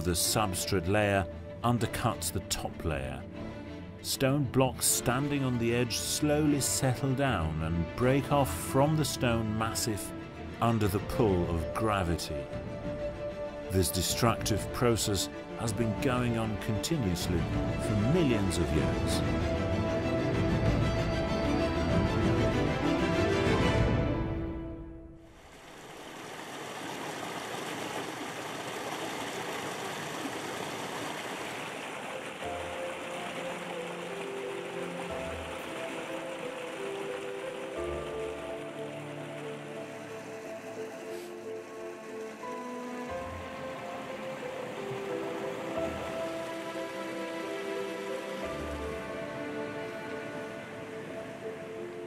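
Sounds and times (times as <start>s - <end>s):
soft background music: 0.0s - 25.3s, 31.2s - 52.0s
stream running over rocks: 25.3s - 52.0s.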